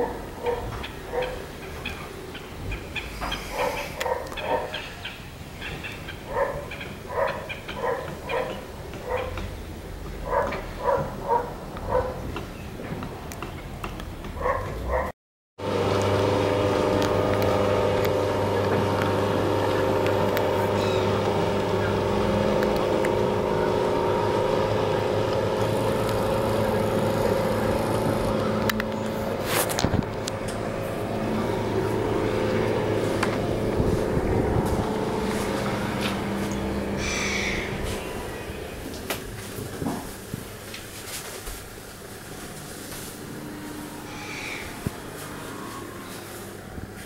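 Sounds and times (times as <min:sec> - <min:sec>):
motorboat engine running: 0:15.6 - 0:40.8, 0:41.6 - 0:47.0.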